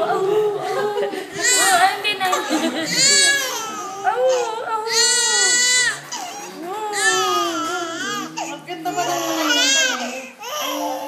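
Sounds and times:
infant crying: 1.4s - 11.0s.

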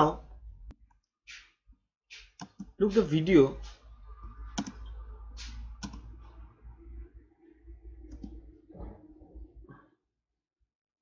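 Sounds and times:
person speaking: 2.6s - 3.9s.

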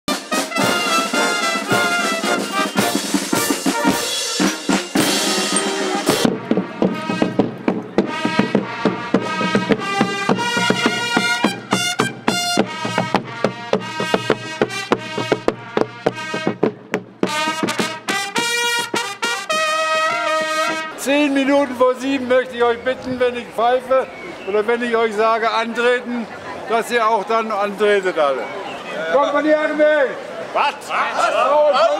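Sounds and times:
marching brass band with drums: 0.1s - 27.6s.

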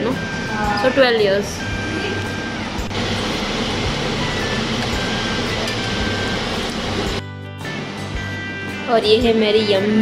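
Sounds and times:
gas stove burner rushing: 1.9s - 7.2s.

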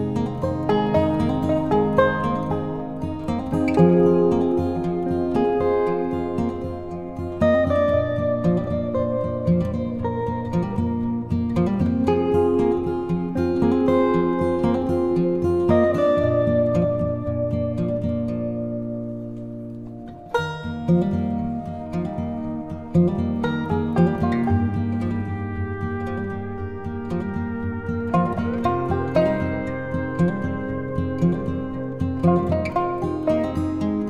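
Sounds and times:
plucked string background music: 0.0s - 34.0s.

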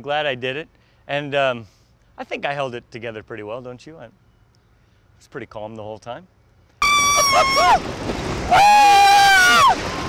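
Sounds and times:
roller coaster riders screaming: 6.8s - 10.0s.

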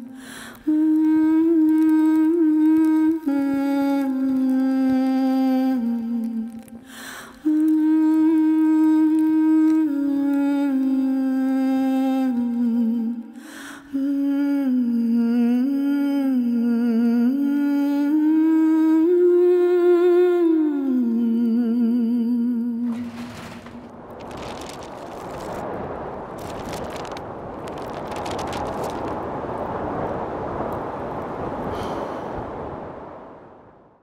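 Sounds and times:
breaths: 0.0s - 0.7s, 6.8s - 7.4s, 13.3s - 14.0s, 31.6s - 32.6s
woman humming melody: 14.0s - 23.0s.

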